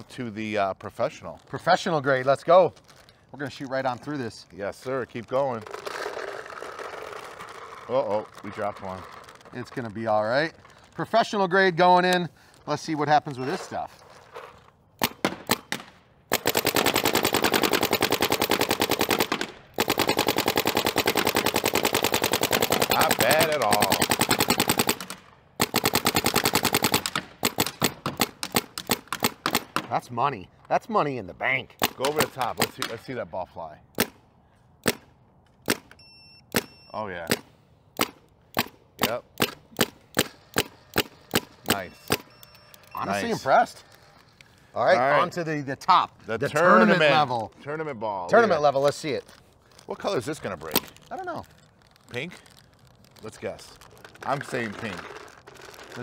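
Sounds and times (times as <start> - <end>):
paintball marker firing: 15.0 - 30.0, 31.8 - 33.0, 33.9 - 34.2, 34.8 - 42.4.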